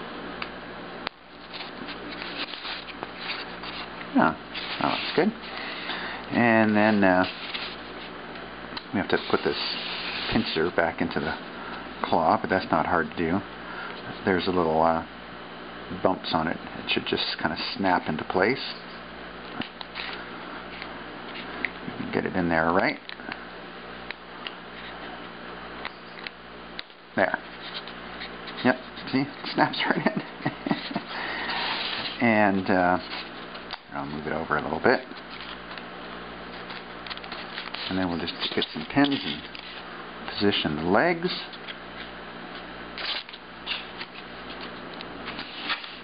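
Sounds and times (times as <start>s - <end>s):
low steady hum: 0.0s - 46.0s
pins scratching and clicking: 36.5s - 39.8s.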